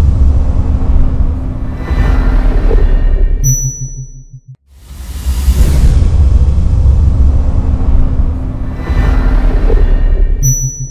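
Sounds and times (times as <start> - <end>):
deep cinematic rumble: 0.0 - 3.6, 4.2 - 10.9.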